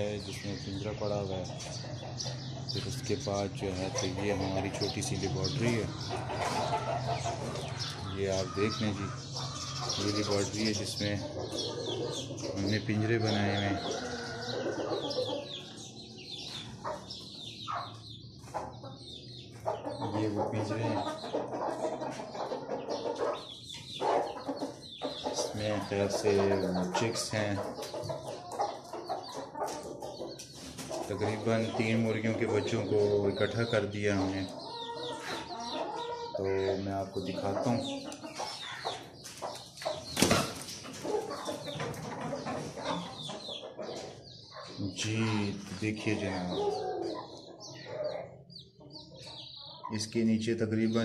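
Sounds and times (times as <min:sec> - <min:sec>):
chickens clucking: 0:00.0 - 0:51.0.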